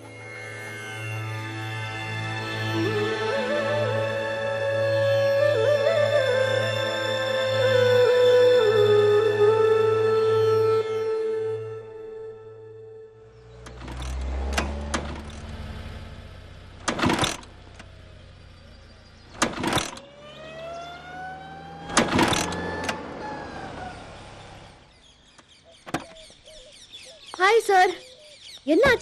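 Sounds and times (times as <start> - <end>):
scooter kick-start clunks: 13.6 - 15.6, 16.8 - 18.0, 19.2 - 20.1, 21.9 - 23.1
scooter engine sputtering: 13.6 - 20.2.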